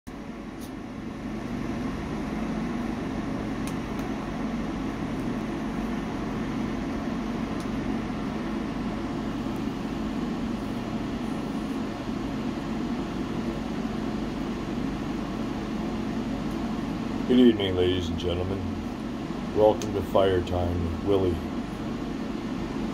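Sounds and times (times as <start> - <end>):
faint fire crackles: 0.4 - 22.7.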